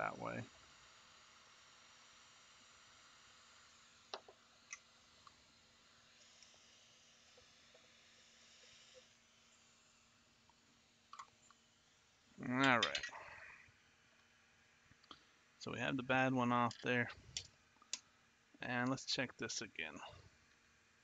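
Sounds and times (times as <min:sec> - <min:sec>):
hot-air gun hiss and hum: 0:00.0 - 0:21.0.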